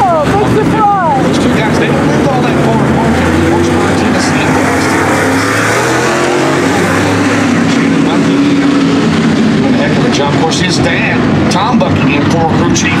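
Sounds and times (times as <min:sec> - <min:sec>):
race car engines running hard: 0:00.0 - 0:13.0.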